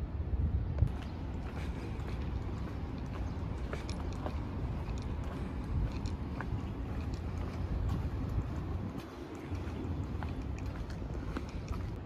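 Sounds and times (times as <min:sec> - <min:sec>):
low outdoor rumble: 0:00.0 - 0:12.0
footsteps on stone path: 0:00.6 - 0:12.0.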